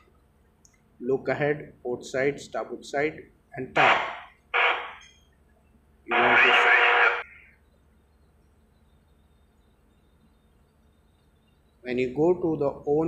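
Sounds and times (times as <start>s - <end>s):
people talking: 1.0s - 4.2s, 6.1s - 7.4s, 11.9s - 13.0s
electronic buzzer tone: 3.8s - 5.2s, 6.1s - 7.4s.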